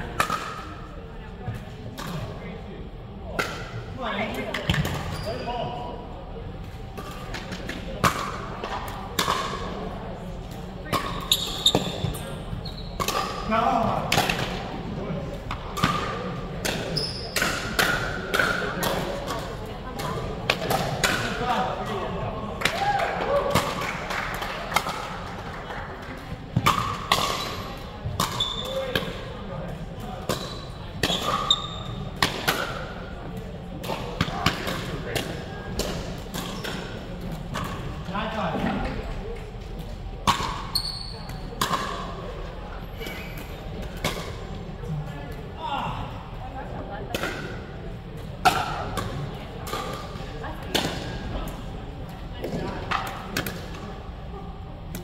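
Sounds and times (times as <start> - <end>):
voices of players: 0.0 - 55.0.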